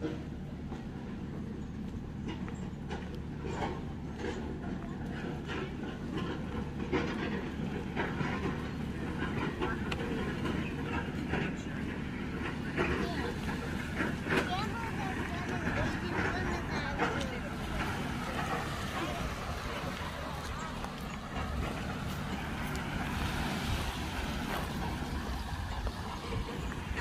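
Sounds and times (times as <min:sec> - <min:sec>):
low steady rumble: 0:00.0 - 0:27.0
people's voices: 0:03.6 - 0:27.0.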